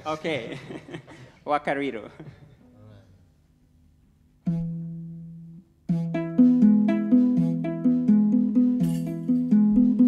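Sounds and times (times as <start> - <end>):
lyre plucked notes: 4.4 - 10.0.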